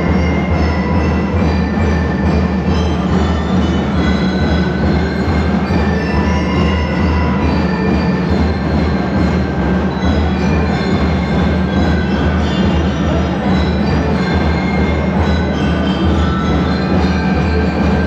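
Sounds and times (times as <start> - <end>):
bell lyres ringing a melody: 0.0 - 18.0
steady drum beat: 0.0 - 18.0.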